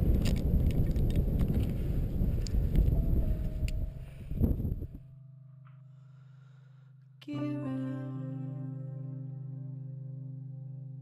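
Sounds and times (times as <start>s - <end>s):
wind buffeting microphone: 0.0s - 5.1s.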